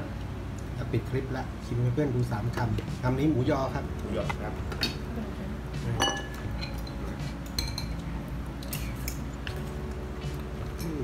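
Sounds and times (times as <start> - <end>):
metal spoon clinking on bowl: 7.5 - 8.0.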